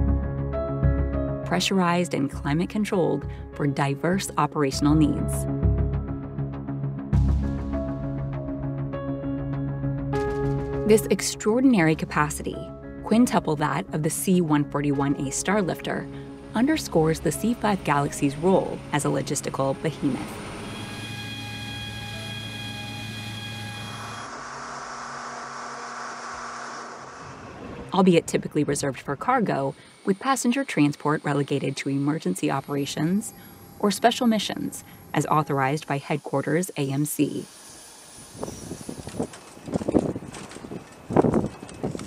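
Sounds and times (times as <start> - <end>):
machinery hum with high whine: 17.3 - 42.0
wind on microphone: 38.2 - 42.0.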